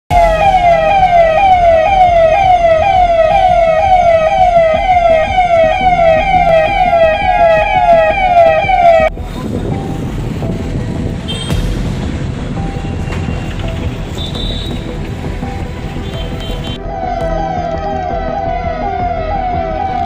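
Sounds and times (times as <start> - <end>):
electronic siren yelping: 0.1 - 9.1, 16.8 - 20.0.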